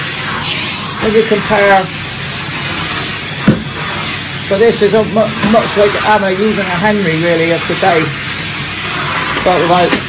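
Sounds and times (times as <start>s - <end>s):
vacuum cleaner on carpet: 0.0s - 10.0s.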